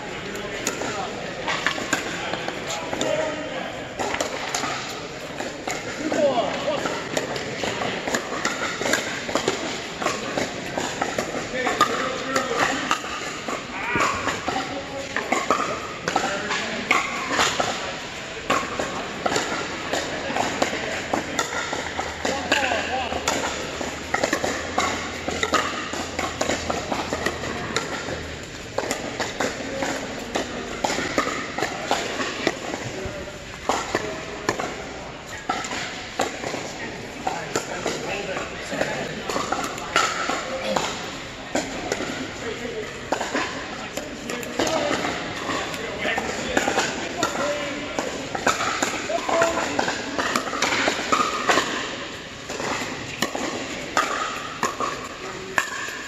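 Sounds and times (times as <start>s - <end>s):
players chattering: 0.0s - 56.0s
paddles hitting plastic ball: 0.2s - 56.0s.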